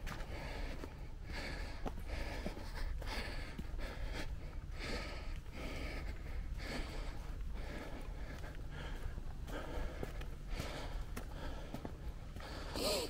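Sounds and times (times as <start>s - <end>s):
person breathing hard: 0.0s - 13.0s.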